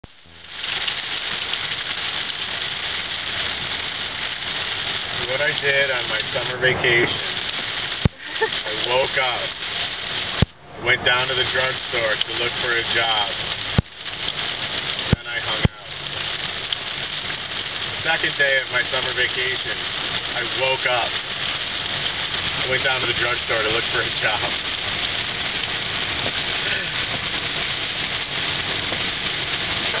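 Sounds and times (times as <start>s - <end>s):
heavy rain on car roof: 0.0s - 30.0s
tyres on wet road: 0.0s - 30.0s.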